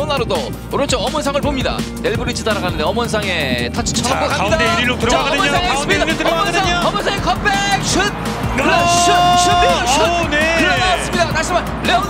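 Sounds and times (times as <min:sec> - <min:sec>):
background music: 0:00.0 - 0:12.0
commentator excited cry: 0:04.1 - 0:11.2.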